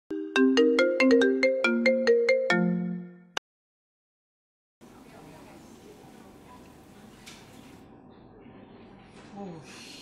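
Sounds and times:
smartphone ringtone melody: 0.1 - 3.3.

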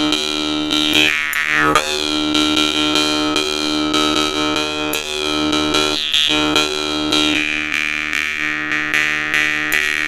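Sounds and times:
jaw harp buzzing drone: 0.0 - 10.0.

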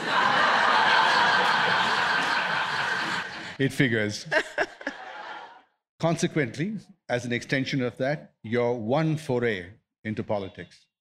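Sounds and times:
audience laughing: 0.0 - 3.6, 4.2 - 5.6.

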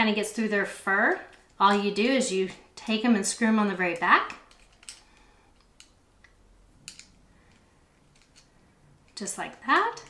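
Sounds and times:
small metal clicks and ticks: 3.9 - 10.0.

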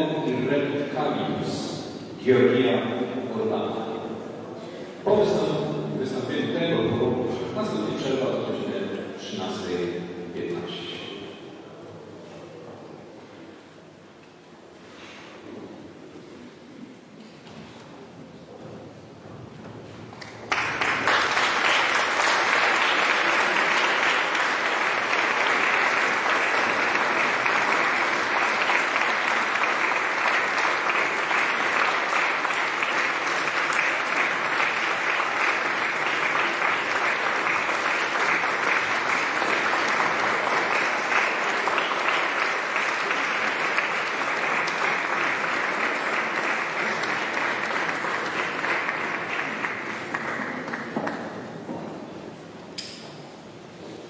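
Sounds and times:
audience applauding: 20.1 - 51.6.

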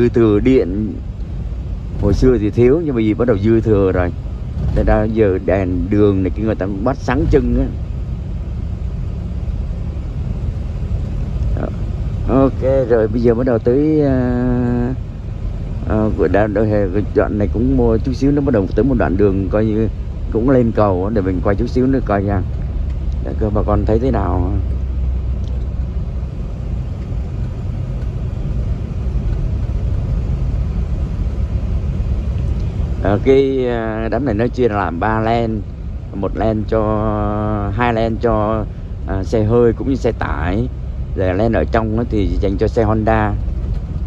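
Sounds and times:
car driving rumble inside cabin: 0.0 - 44.0.

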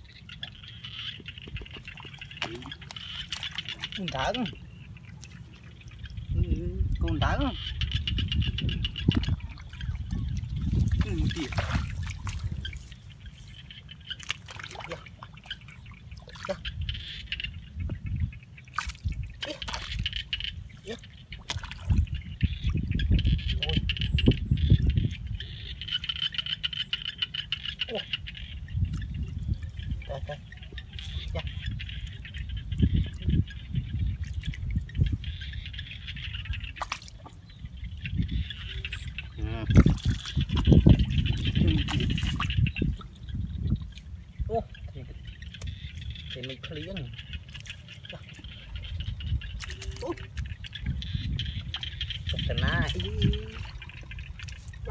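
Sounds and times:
water splashes: 0.0 - 6.4, 8.4 - 54.9
trickling water: 0.0 - 54.9.

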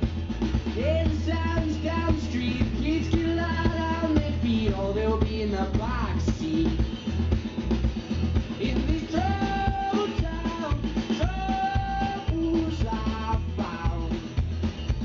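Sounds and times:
drum kit steady beat: 0.0 - 15.0
electric bass: 0.0 - 15.0
strummed acoustic guitar: 0.0 - 15.0.

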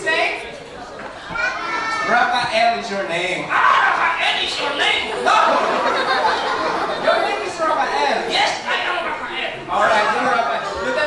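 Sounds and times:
children talking: 0.0 - 11.0
man talking through microphone: 2.1 - 5.8, 7.0 - 11.0.

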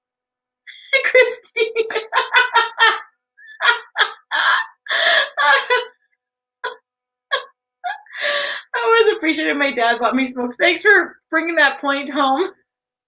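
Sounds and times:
woman laughing: 0.7 - 6.0, 6.6 - 8.9.

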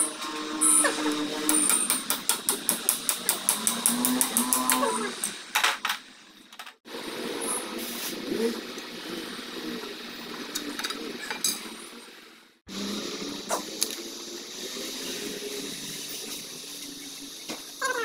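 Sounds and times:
cow mooing: 3.5 - 5.2.

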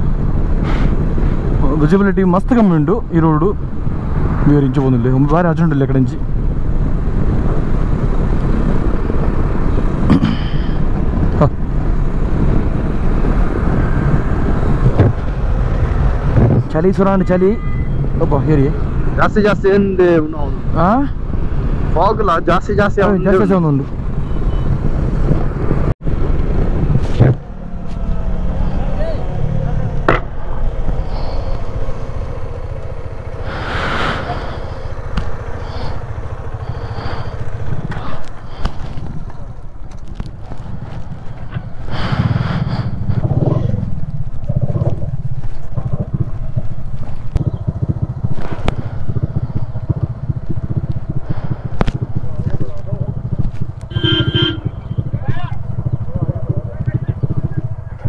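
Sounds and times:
wind noise on microphone: 6.6 - 17.0, 23.8 - 27.6, 36.6 - 56.5
motorcycle engine running and idling: 27.5 - 58.0.

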